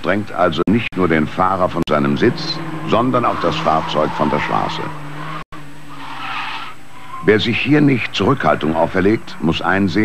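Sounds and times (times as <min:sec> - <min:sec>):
engine drone: 0:00.7 - 0:09.8
car tyres squealing: 0:01.9 - 0:09.3.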